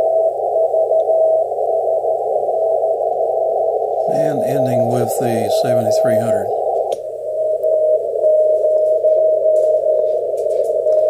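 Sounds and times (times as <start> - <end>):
radio band noise hiss: 0.0 - 11.0
morse code tone: 4.0 - 11.0.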